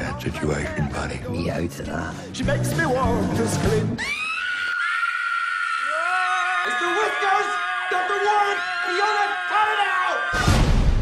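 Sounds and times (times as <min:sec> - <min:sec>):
woman screaming: 0:04.0 - 0:10.4.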